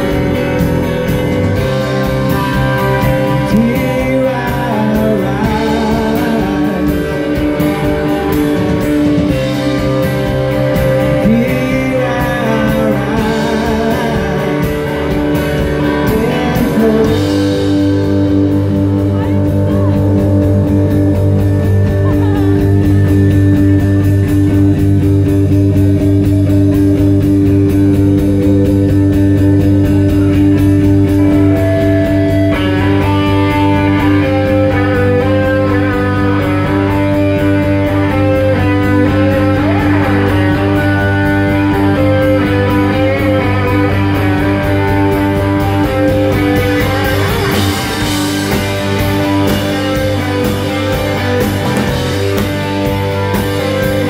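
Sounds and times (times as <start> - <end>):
high guitar line: 0.0 - 54.0
live rock band playing: 0.0 - 54.0
man singing: 2.0 - 9.4, 10.8 - 20.2, 33.6 - 44.2.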